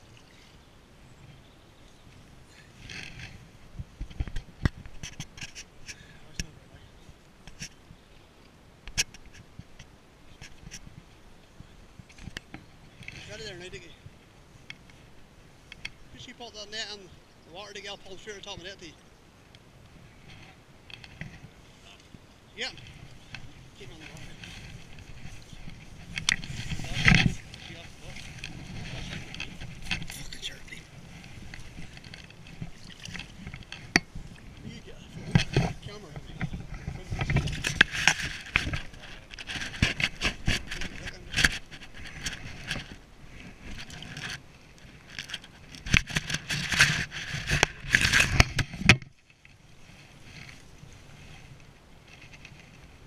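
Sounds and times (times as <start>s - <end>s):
landing net rustling and scraping: 2.7s - 5.8s, 20.1s - 53.0s.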